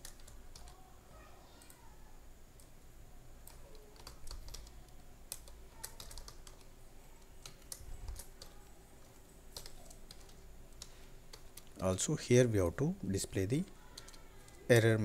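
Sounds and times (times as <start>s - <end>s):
typing on computer keyboard: 0.0s - 0.8s, 3.4s - 11.8s, 13.6s - 14.8s.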